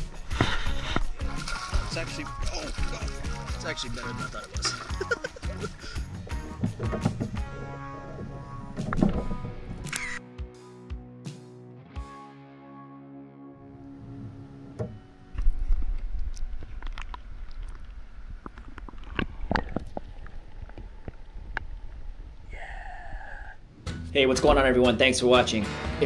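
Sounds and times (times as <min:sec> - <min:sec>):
water sloshing and splashing: 0:00.0 - 0:09.9, 0:15.4 - 0:22.4
music with sustained tones: 0:00.0 - 0:16.0.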